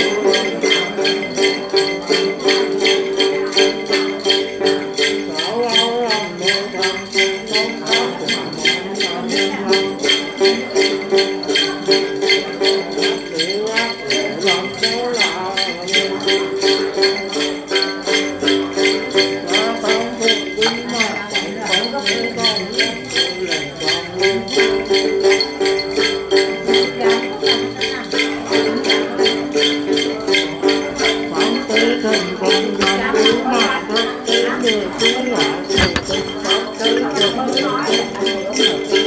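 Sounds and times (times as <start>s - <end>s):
jingle bells shaken: 0.0s - 39.0s
plucked long-necked lute: 0.0s - 39.0s
man singing with wavering voice: 5.0s - 11.8s, 12.7s - 17.6s, 18.8s - 25.0s, 31.0s - 39.0s.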